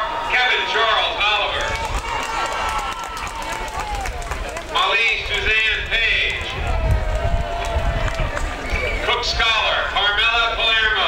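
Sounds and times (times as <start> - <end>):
speech over loudspeakers: 0.0 - 2.7, 3.6 - 11.0
low rumbling on microphone: 3.6 - 10.9.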